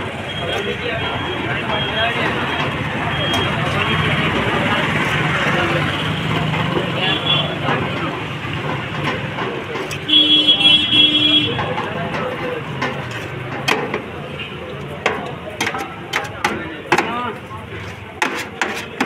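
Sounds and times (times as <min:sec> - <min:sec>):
street traffic: 0:00.0 - 0:19.0
vehicle horn honking: 0:10.0 - 0:11.6.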